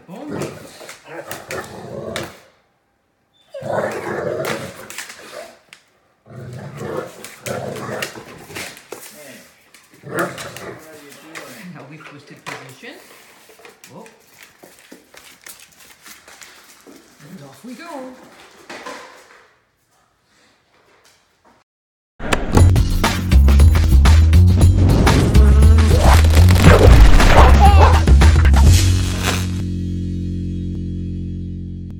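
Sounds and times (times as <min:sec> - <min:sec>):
dog paws clicking on tile: 0:07.2 - 0:17.6
outro music with heavy bass beat: 0:22.6 - 0:31.9.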